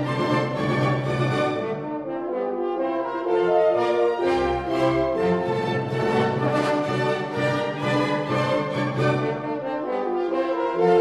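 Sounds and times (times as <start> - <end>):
french horns playing in harmony: 0.0 - 11.0.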